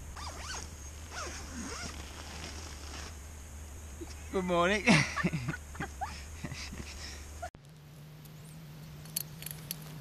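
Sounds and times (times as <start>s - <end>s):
tent door zipper pulled: 0.2s - 3.2s.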